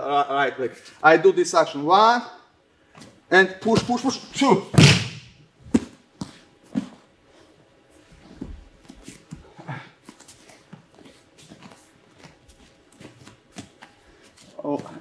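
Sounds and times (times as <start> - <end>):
bare footsteps: 3.0 - 7.1, 8.1 - 15.0.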